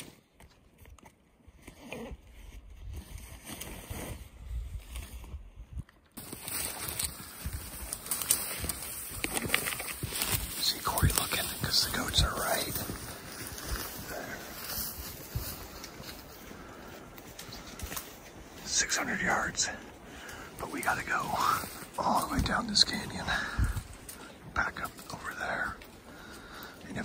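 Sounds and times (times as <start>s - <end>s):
twigs snapping and rustling: 6.0s - 16.5s, 17.1s - 18.6s, 20.2s - 26.8s
footsteps crunching through snow: 6.2s - 26.5s.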